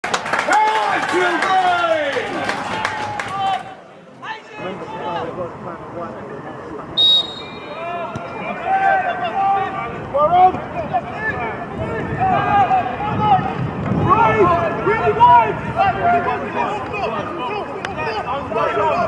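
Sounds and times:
players calling and shouting: 0.5s - 19.0s.

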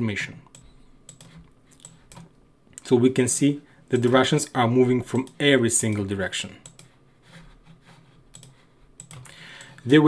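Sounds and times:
man talking: 0.0s - 0.5s, 2.8s - 6.6s
computer keyboard and mouse clicks: 0.5s - 2.4s, 4.0s - 4.2s, 5.1s - 7.0s, 8.3s - 9.8s.

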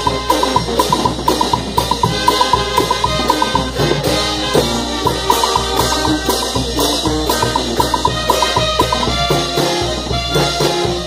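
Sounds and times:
hand percussion: 0.0s - 9.6s
bass drum beat: 0.0s - 10.3s
brass band playing dance tune: 0.0s - 11.0s
congas: 0.0s - 11.0s
cymbals: 0.0s - 11.0s.

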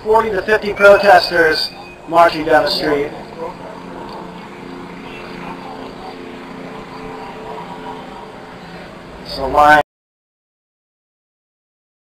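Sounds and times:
distant voices murmuring: 0.0s - 9.8s
engine drone: 0.0s - 9.8s.

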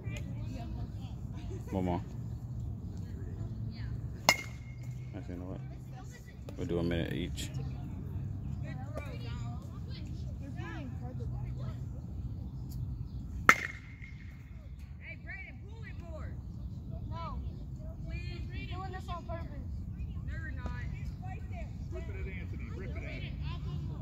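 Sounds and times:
metal bat hitting baseball: 4.2s - 5.0s, 13.4s - 14.4s.

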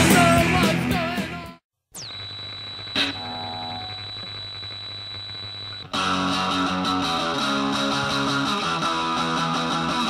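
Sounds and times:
high-pitched electronic whine: 1.9s - 6.6s.

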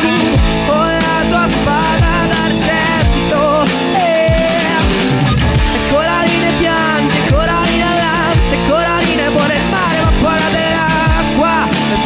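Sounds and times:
bass guitar: 0.0s - 12.0s
drum kit: 0.0s - 12.0s
electric guitars: 0.0s - 12.0s
guitar lead with bending notes: 0.0s - 12.0s.

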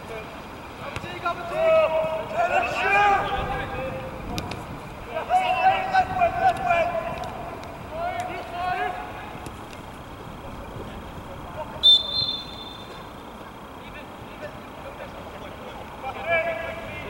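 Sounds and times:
players shouting: 0.8s - 13.8s
referee's whistle blast: 11.8s - 13.1s.

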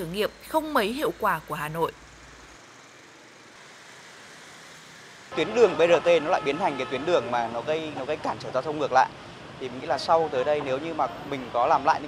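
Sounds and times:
distant street traffic hiss: 0.0s - 12.0s.

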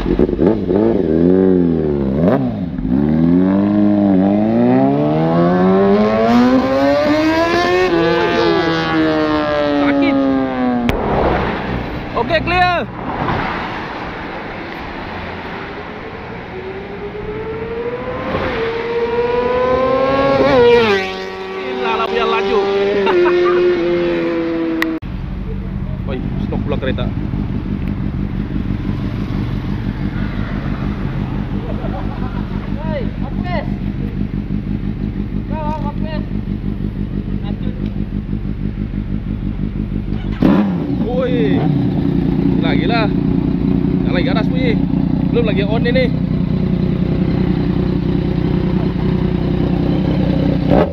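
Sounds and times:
motorcycle engine accelerating: 0.0s - 13.2s, 14.1s - 50.9s
motorcycle idling: 25.1s - 50.9s.

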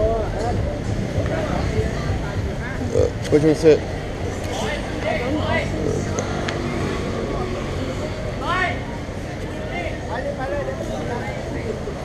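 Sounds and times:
rumble of passing vehicles: 0.0s - 12.0s.

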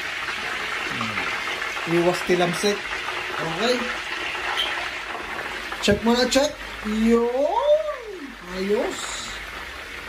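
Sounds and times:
meat deep-frying in oil: 0.0s - 10.0s.

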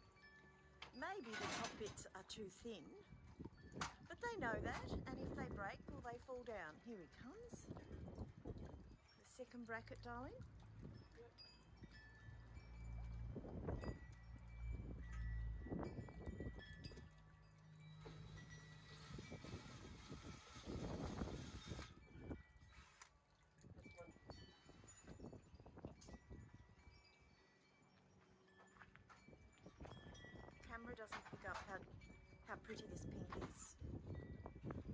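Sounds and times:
wind buffeting microphone: 3.0s - 9.1s, 11.8s - 17.4s, 18.4s - 22.8s, 23.6s - 27.1s, 29.2s - 34.9s
cordless drill running: 18.1s - 22.0s.

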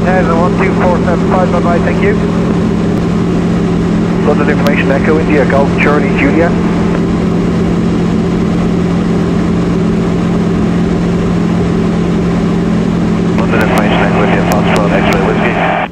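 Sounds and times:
light aircraft engine drone: 0.0s - 15.9s.

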